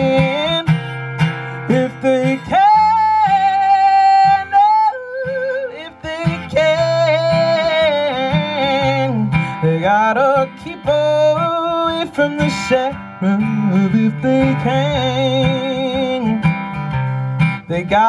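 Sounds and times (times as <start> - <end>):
woman singing blues: 0.0 - 16.5
acoustic guitar: 0.0 - 18.0.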